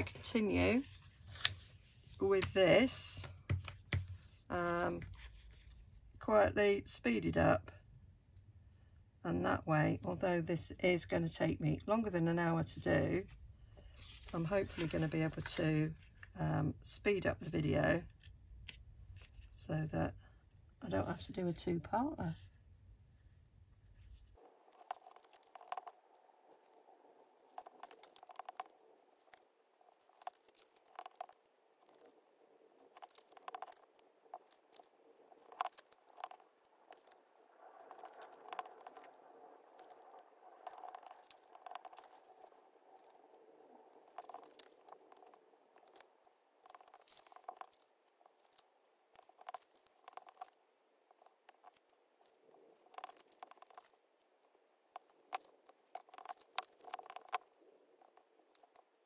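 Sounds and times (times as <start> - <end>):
paper rustling and scraping: 0.3 - 2.5, 14.0 - 16.3.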